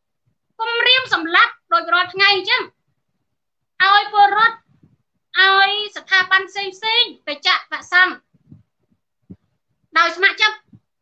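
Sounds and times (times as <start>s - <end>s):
person talking: 0.6s - 2.8s, 3.8s - 4.7s, 5.3s - 8.3s, 9.9s - 10.9s.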